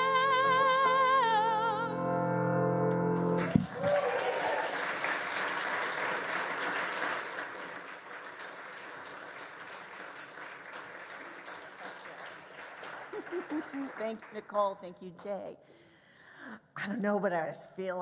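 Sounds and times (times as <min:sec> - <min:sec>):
audience applauding: 0:03.2 - 0:14.9
person speaking: 0:13.6 - 0:15.7.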